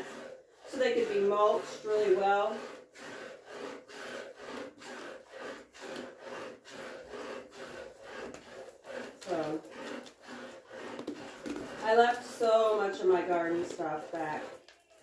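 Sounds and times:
milk squirting into metal pail: 0:00.0 - 0:15.0.

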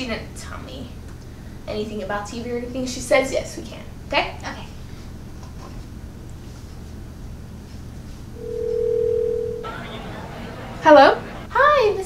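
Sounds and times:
telephone ringback tone: 0:08.4 - 0:09.9
faint telephone line hiss: 0:08.4 - 0:11.5.

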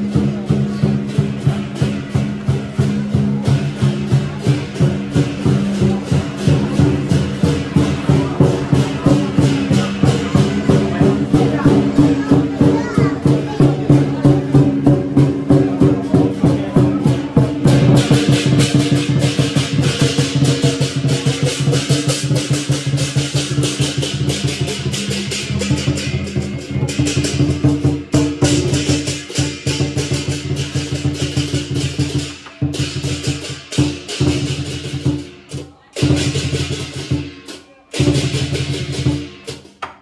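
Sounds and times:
cymbals crashing: 0:00.0 - 0:39.8
drum beat: 0:00.0 - 0:40.0.

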